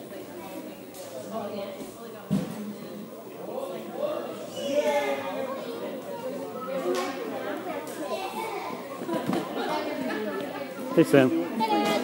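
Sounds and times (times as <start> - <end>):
people chattering: 0.0 - 12.0
children's voices: 4.0 - 12.0.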